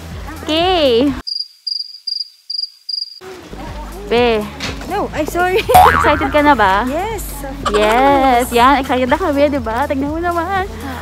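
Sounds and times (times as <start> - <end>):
crickets chirping: 1.2 - 3.2.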